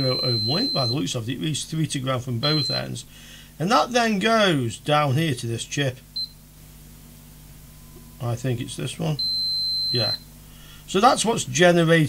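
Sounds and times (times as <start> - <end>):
multimeter buzzer chirp: 0.0 - 3.1, 6.1 - 6.6, 7.7 - 10.4
faint low hum: 0.0 - 12.0.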